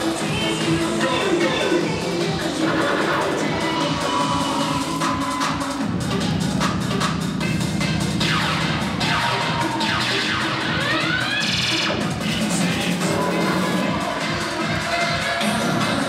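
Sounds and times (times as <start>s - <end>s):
cheerleading music mix: 0.0s - 16.0s.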